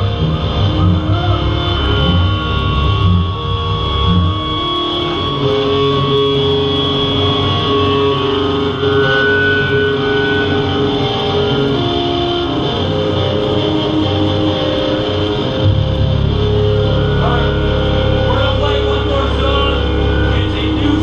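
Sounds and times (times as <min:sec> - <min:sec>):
bass guitar ringing notes: 0:00.0 - 0:21.0
distorted electric guitars: 0:00.0 - 0:21.0.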